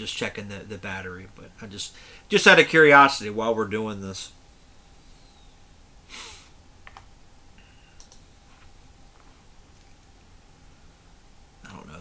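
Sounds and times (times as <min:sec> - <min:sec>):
short breath: 0:01.9 - 0:02.3, 0:06.1 - 0:06.6.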